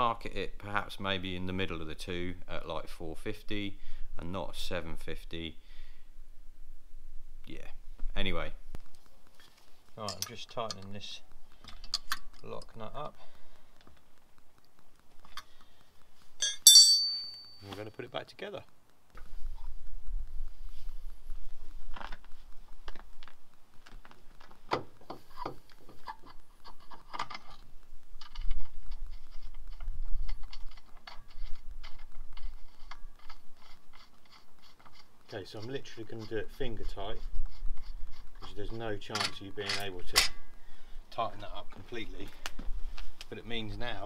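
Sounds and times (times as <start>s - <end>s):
faint steady hum: 0.0s - 44.0s
man talking: 10.0s - 11.2s, 12.4s - 13.2s, 17.6s - 18.7s, 41.1s - 42.4s, 43.3s - 44.0s
metal suspension parts clicking: 16.4s - 17.8s.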